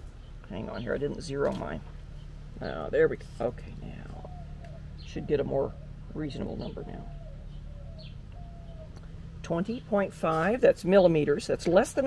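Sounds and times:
faint bird calls: 0:00.0 - 0:11.8
bird chirp: 0:00.0 - 0:12.0
low background hum: 0:00.0 - 0:12.0.

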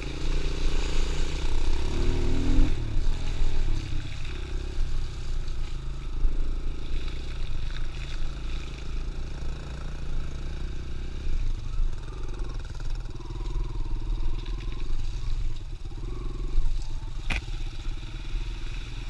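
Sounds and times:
dirt bike engine running: 0:00.0 - 0:19.0.

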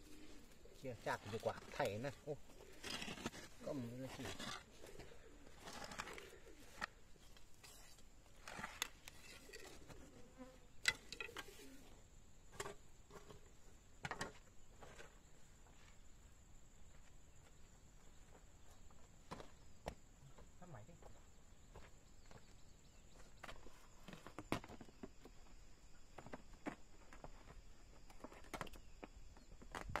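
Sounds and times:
hoe and knife scraping soil: 0:00.0 - 0:11.9.

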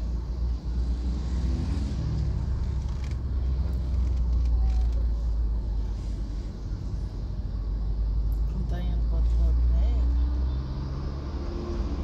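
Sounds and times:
car rumble in traffic: 0:00.0 - 0:12.0.

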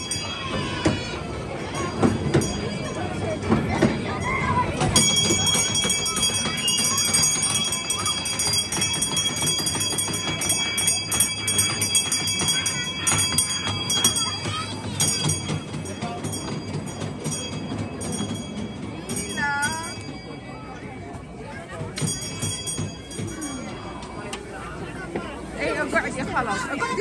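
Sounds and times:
crowd chatter: 0:00.0 - 0:27.0
small bells shaking: 0:04.9 - 0:20.4, 0:21.9 - 0:24.0.

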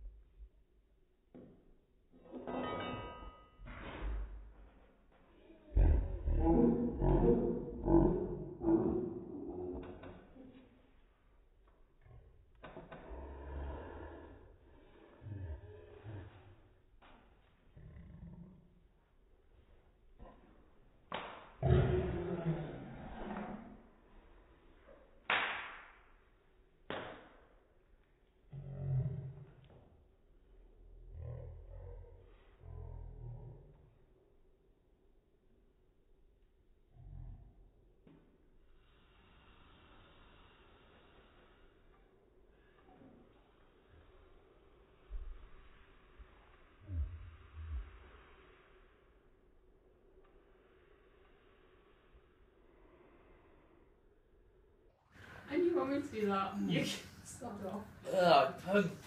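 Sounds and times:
low vocal sounds: 0:05.4 - 0:10.6, 0:12.0 - 0:16.7, 0:21.6 - 0:23.9, 0:28.5 - 0:29.6, 0:30.8 - 0:33.9
puff of breath: 0:12.7 - 0:16.8, 0:21.6 - 0:24.0.

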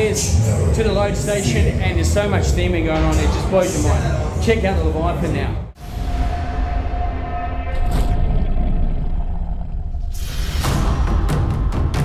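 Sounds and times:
low rumbling drone: 0:05.8 - 0:11.7
whoosh: 0:05.8 - 0:11.7.

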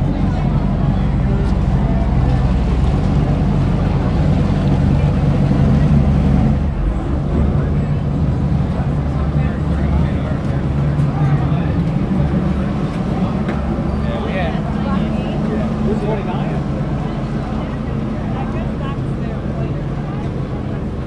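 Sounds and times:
boat engine idling: 0:00.0 - 0:21.0
crowd chatter: 0:00.0 - 0:21.0.

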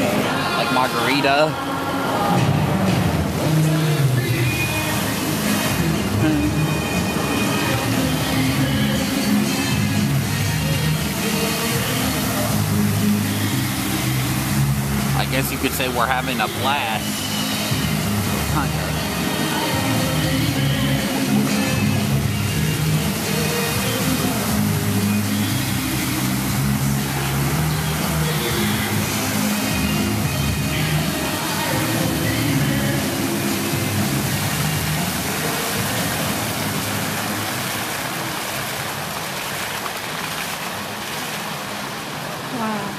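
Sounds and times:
fountain jets hissing: 0:00.0 - 0:42.9
fountain show music: 0:00.0 - 0:42.9.

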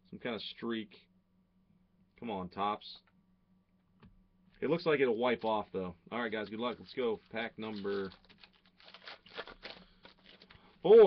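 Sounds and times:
foil wrapper tearing and crinkling: 0:07.3 - 0:11.0.

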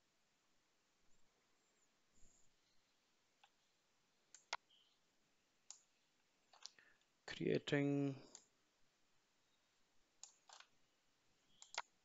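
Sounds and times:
computer mouse clicks: 0:04.3 - 0:04.7, 0:05.6 - 0:05.9, 0:06.5 - 0:06.8, 0:08.3 - 0:08.5, 0:10.2 - 0:10.8, 0:11.5 - 0:12.0.

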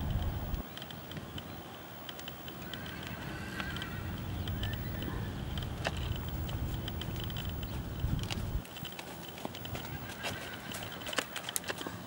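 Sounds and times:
hoofbeats in sand: 0:02.7 - 0:12.0.

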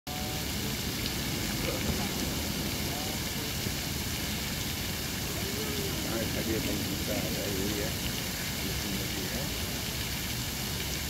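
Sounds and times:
fountain water splashing: 0:00.1 - 0:11.0.

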